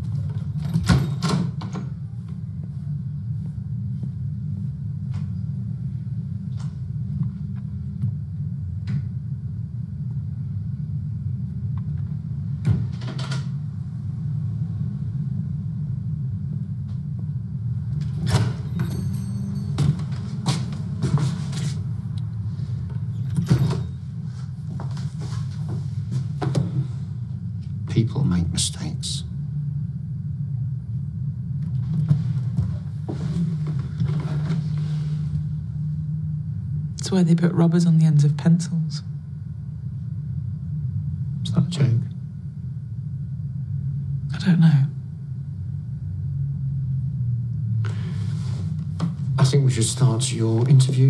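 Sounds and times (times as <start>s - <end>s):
low background rumble: 0.0s - 51.0s.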